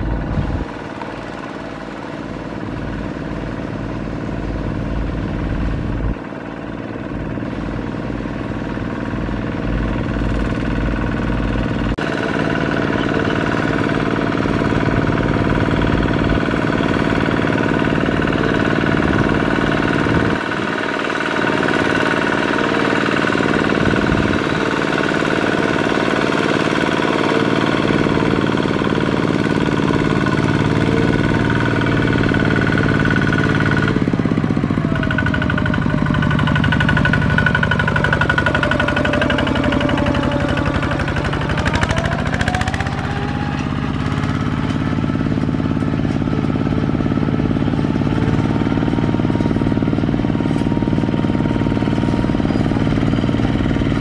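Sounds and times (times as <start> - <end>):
diesel tractor engine chugging: 0.0 - 54.0.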